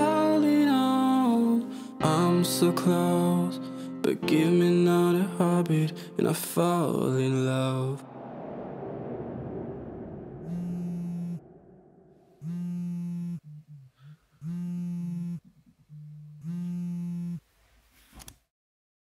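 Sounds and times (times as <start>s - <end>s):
low buzzing tone: 8.2s - 17.4s.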